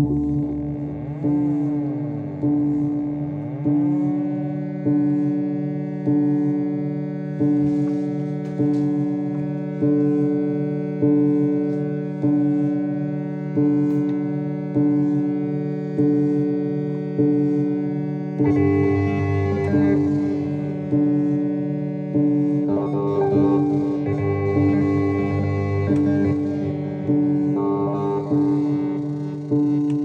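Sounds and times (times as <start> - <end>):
steady low drone: 0.0 - 30.0
looping synthesized notes: 22.7 - 30.0.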